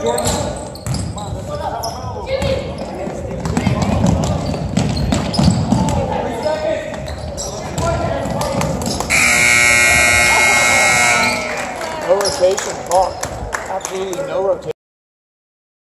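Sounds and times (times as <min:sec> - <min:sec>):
scoreboard buzzer blast: 0:09.1 - 0:11.8
crowd voices: 0:09.1 - 0:12.8.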